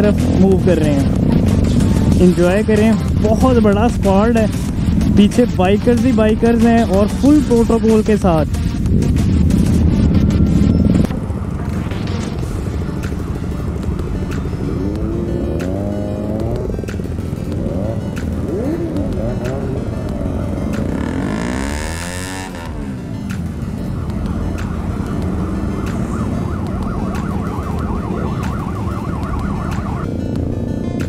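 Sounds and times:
background music: 0.0s - 31.0s
motorcycle engines running: 0.0s - 31.0s.

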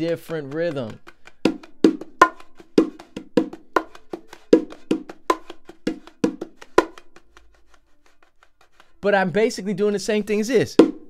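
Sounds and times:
bongos played by hand: 0.0s - 9.0s, 10.6s - 11.0s.

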